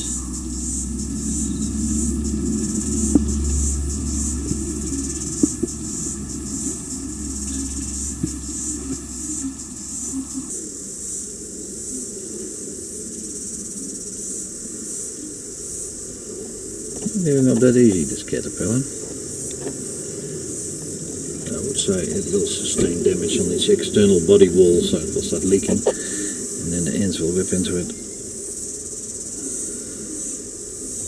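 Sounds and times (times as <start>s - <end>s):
low hum: 0.0s - 29.4s
insect chorus chirring: 0.0s - 31.0s.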